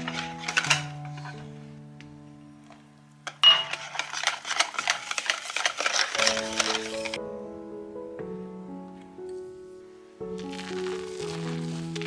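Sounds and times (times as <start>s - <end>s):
soft music with mallet notes: 0.0s - 3.9s, 6.3s - 10.6s.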